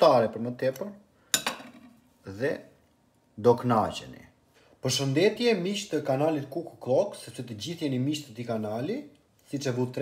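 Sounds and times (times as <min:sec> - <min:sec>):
knife clinking on ceramic plate: 0:01.3 - 0:01.9.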